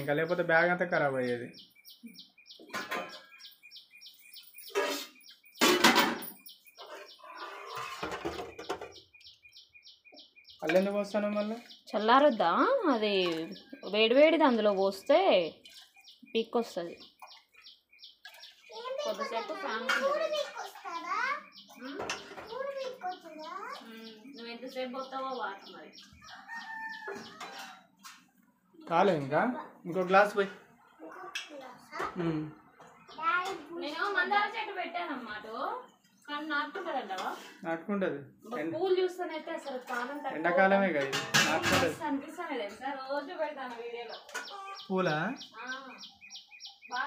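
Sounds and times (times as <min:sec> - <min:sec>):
metal pots and ladle clattering: 0:02.6 - 0:03.4, 0:04.6 - 0:09.0, 0:19.2 - 0:21.2, 0:39.8 - 0:42.8
rooster crowing: 0:26.2 - 0:27.8
bird chirping fast: 0:44.1 - 0:47.0.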